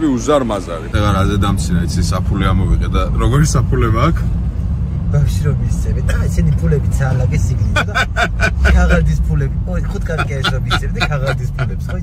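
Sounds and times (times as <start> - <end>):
car engine rumble from inside: 0.0 - 12.0
men talking and laughing: 6.1 - 12.0.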